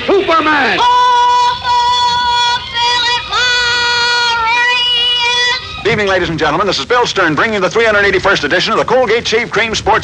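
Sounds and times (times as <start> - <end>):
man speaking: 0.0 - 0.8, 5.8 - 10.0
voices singing in harmony: 0.0 - 6.4.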